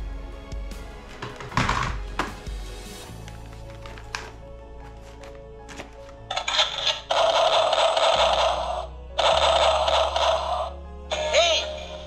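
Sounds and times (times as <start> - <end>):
background music: 0.0 - 12.0
toy gun rapid-fire sound effect: 6.3 - 10.7.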